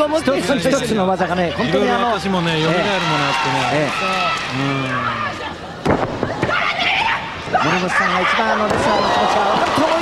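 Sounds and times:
crowd shouting and yelling: 0.0 - 10.0.

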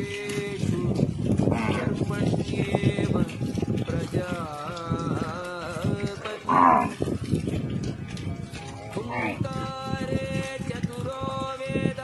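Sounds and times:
cow lowing: 1.4 - 2.0, 6.1 - 7.2, 8.7 - 9.5.

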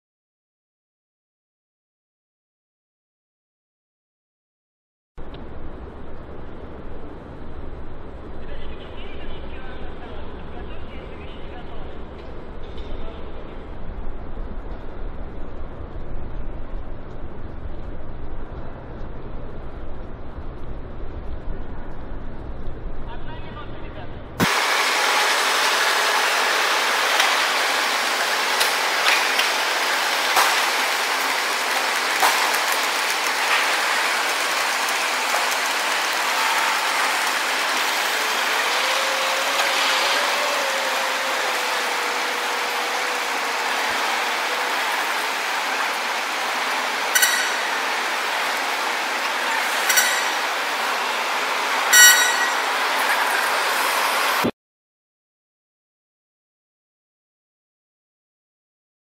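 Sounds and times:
sharp metallic clanks: 47.2 - 47.8, 49.8 - 50.5, 51.9 - 52.8.

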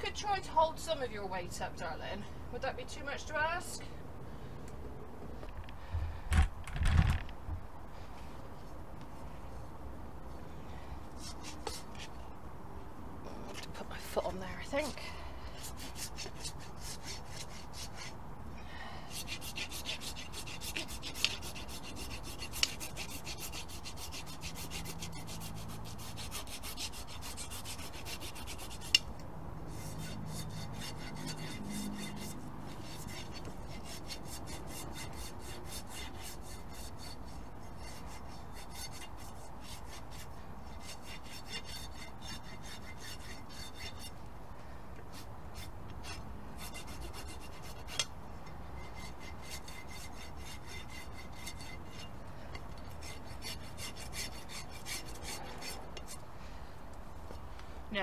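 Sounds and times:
rasp filing a hoof: 11.1 - 12.2, 14.7 - 18.2, 19.0 - 29.1, 29.7 - 44.3, 45.0 - 56.3.

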